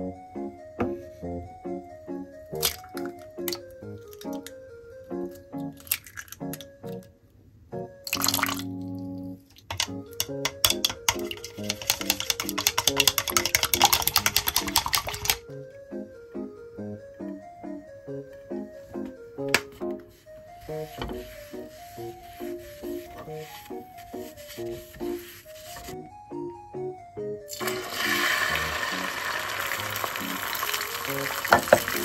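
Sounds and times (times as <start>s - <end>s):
background music: 0.0s - 32.0s
eggs beaten with rapid clicking: 2.6s - 4.5s, 5.6s - 6.7s, 9.6s - 15.4s, 27.6s - 32.0s
rushing liquid: 27.6s - 32.0s.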